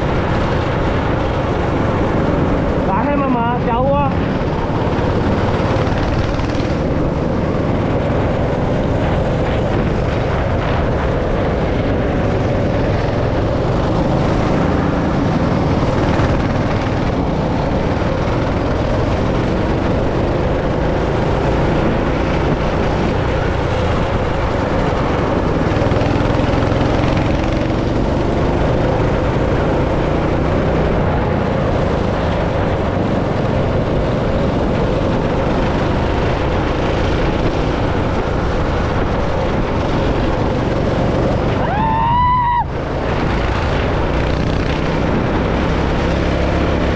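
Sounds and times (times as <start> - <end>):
go-kart engine running: 0.0 - 46.9.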